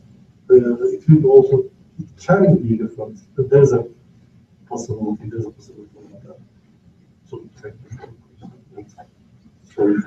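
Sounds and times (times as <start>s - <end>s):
man speaking close to microphone: 0.5s - 4.0s, 4.7s - 6.4s, 7.3s - 9.0s, 9.7s - 10.0s.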